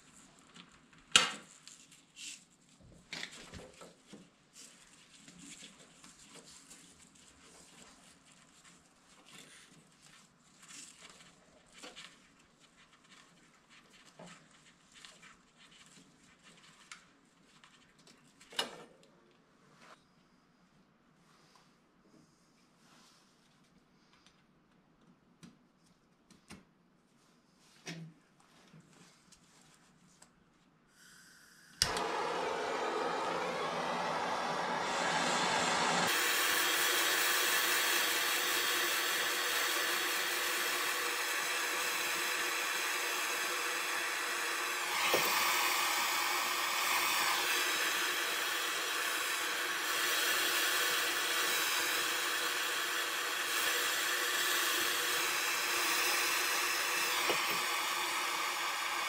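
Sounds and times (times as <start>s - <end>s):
gas hissing: 31.1s - 59.0s
torch igniter click: 31.8s - 32.3s
gas torch flame rushing: 31.8s - 59.0s.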